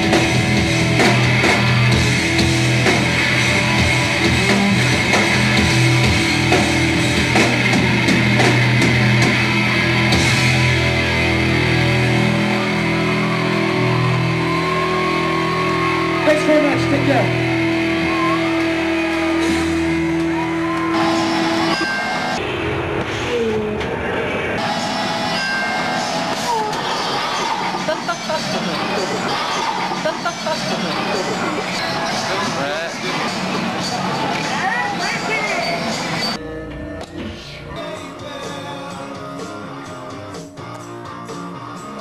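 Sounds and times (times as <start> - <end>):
live punk rock: 0.0 - 22.4
distorted electric guitars: 0.0 - 42.0.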